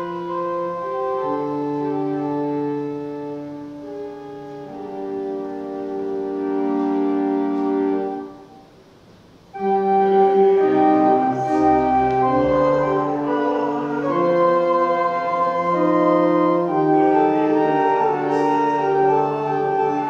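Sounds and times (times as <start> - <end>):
church organ playing a hymn: 0.0 - 8.8, 9.5 - 20.0.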